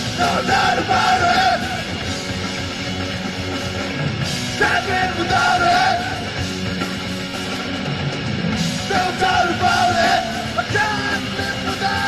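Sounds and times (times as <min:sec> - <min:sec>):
punk rock band playing: 0:00.0 - 0:12.0
singer shouting: 0:08.9 - 0:12.0.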